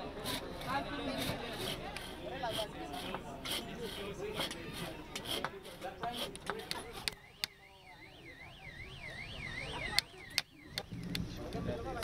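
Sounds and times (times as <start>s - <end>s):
warbling siren-like tone: 6.9s - 11.4s.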